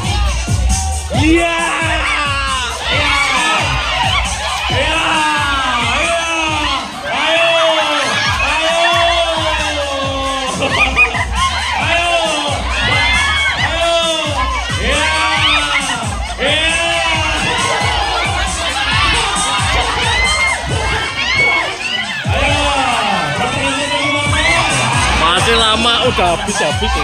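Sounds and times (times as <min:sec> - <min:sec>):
crowd shouting and cheering: 0:00.0 - 0:27.0.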